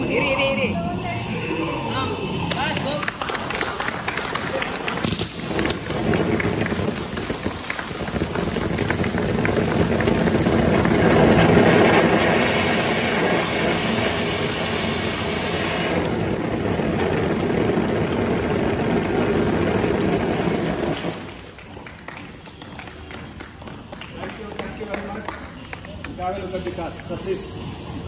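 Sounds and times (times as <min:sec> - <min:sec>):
spark fountain machines crackling: 0:02.5 - 0:28.0.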